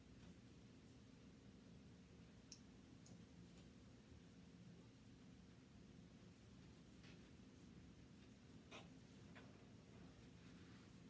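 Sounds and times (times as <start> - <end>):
faint sharp clicks: 2.4 - 3.2.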